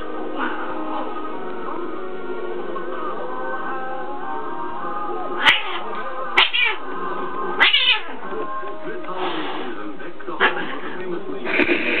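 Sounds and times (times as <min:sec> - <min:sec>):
cat yowling and growling: 0:05.1 - 0:06.9, 0:07.5 - 0:08.2.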